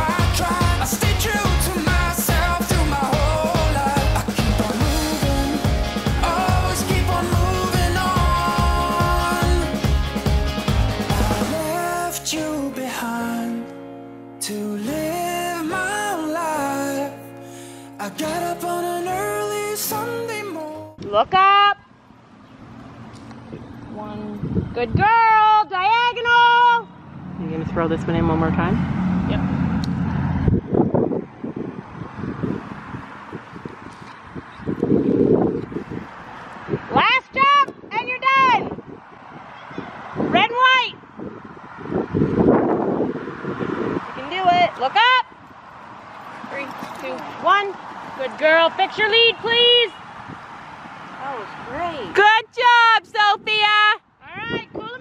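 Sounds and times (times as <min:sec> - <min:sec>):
faint outdoor background: 0:00.0 - 0:55.0.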